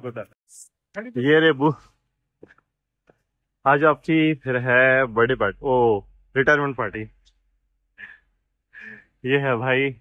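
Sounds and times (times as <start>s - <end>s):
faint breaths or sighs: 8.0s - 9.2s.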